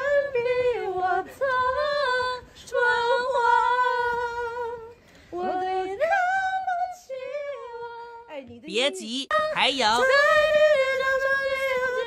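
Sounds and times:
person singing unaccompanied: 8.7s - 10.5s.

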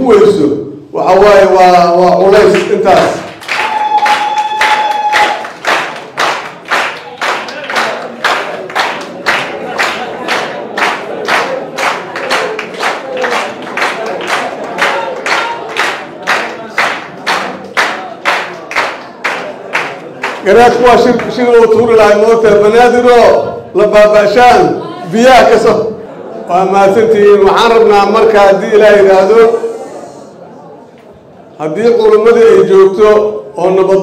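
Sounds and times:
audience clapping in unison: 2.4s - 21.8s.

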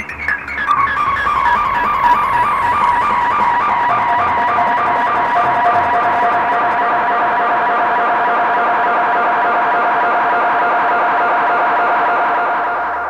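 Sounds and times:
distorted electronic drone: 0.0s - 13.0s.

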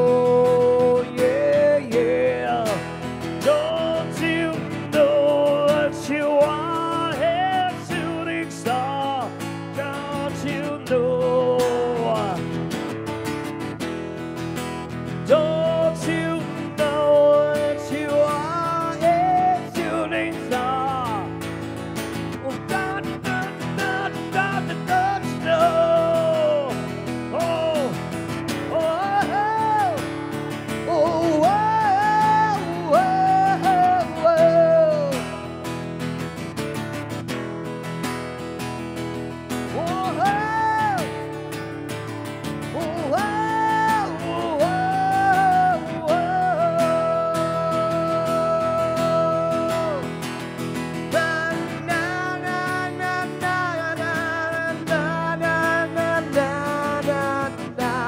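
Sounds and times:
acoustic guitar: 0.0s - 58.0s.

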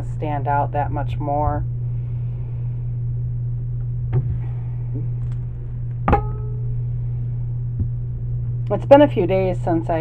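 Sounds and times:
steady low hum: 0.0s - 10.0s
sharp ringing knock: 6.1s - 6.7s.

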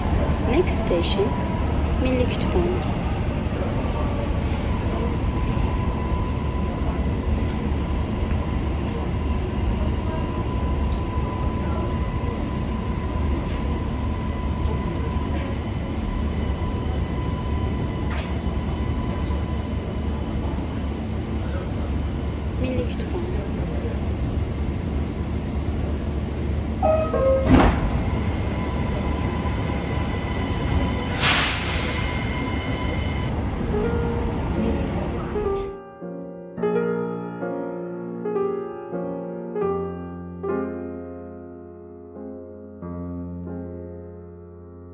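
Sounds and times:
metro train low rumble: 0.0s - 41.8s.

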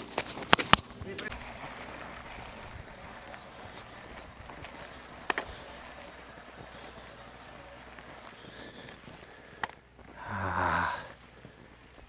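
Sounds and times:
bike knocking and clattering: 0.0s - 10.1s.

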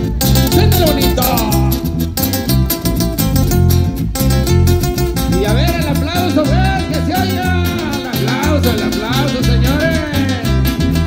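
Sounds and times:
bass line: 0.0s - 11.0s
sliding melody line: 0.0s - 11.0s.

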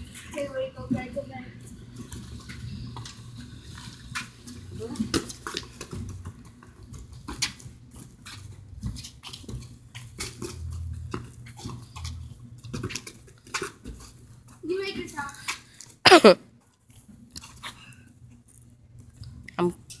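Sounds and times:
ball kicked on concrete: 4.9s - 14.0s.

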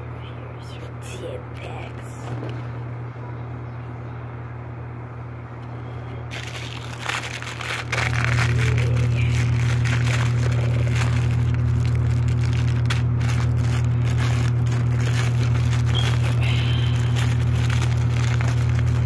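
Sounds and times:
loud low hum: 0.0s - 19.0s
plastic bag crinkling: 6.3s - 19.0s.

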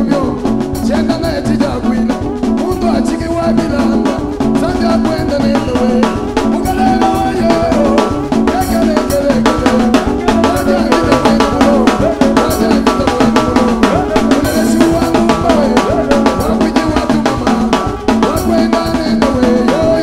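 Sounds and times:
drum kit beating: 0.0s - 20.0s
live band playing dance music: 0.0s - 20.0s.

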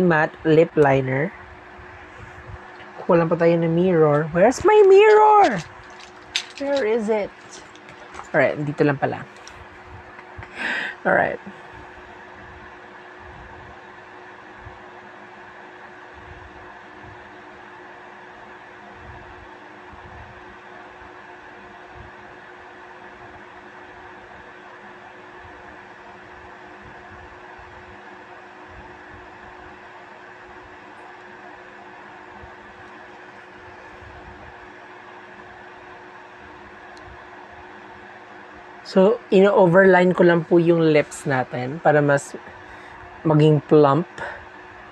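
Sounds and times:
mechanical hum and hiss: 0.0s - 44.9s.

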